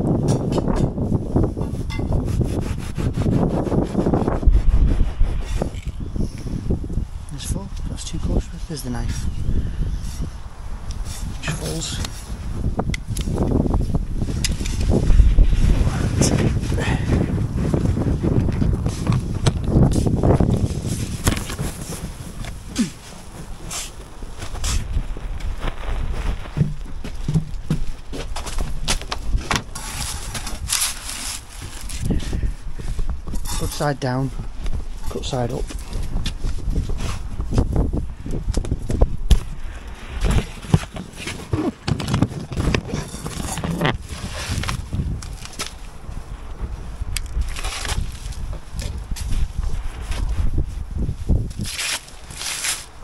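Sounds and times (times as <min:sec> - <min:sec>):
insulation slabs rustling and knocking: 0:18.4 - 0:32.0.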